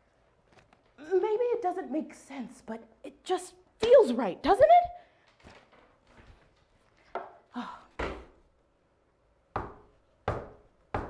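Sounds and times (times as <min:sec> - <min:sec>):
sharp wooden knocks: 0:09.6 - 0:11.0.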